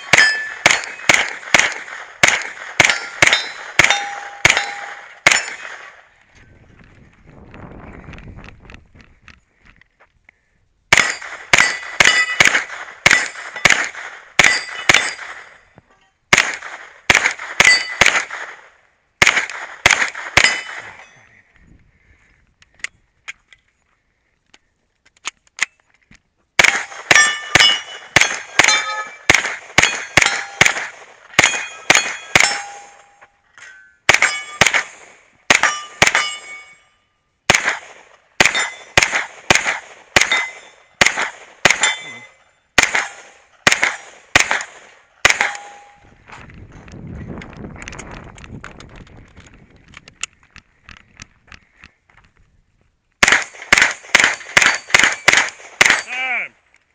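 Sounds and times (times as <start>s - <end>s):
steel target ringing: 0.0s - 1.1s, 2.8s - 5.6s, 11.0s - 12.5s, 14.4s - 15.6s, 27.1s - 30.8s, 31.4s - 37.1s, 38.4s - 39.0s, 41.7s - 42.4s, 45.3s - 46.0s
rapid gunshots: 0.0s - 6.0s, 10.9s - 15.5s, 16.3s - 20.9s, 26.6s - 32.7s, 37.5s - 42.0s, 42.8s - 45.7s, 53.2s - 56.1s.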